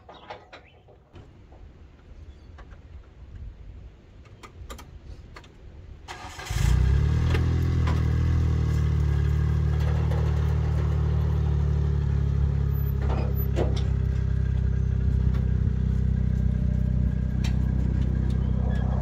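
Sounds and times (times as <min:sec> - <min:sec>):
utility vehicle engine idling: 0:06.2 - 0:19.0.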